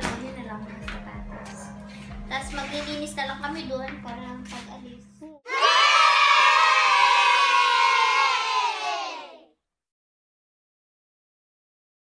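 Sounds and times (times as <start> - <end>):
children cheering: 5.5 - 9.5.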